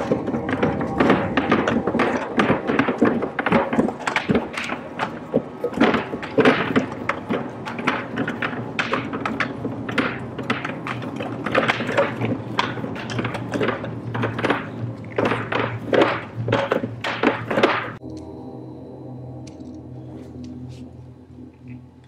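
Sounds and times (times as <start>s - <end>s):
faint music: 0.0s - 22.0s.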